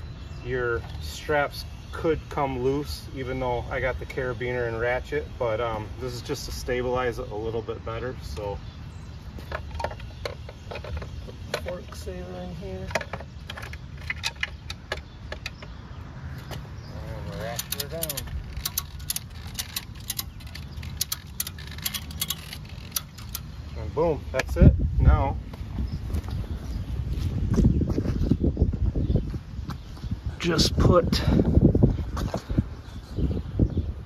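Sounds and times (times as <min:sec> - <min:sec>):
wind rumble on microphone: 0:16.8 - 0:34.0
metal strap hardware clicking: 0:17.3 - 0:23.6.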